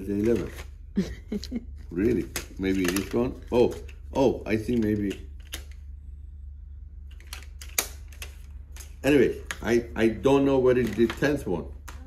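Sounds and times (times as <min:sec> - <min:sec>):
steady low hum: 0:00.0 - 0:12.0
plastic clicks and rattles: 0:02.2 - 0:04.0.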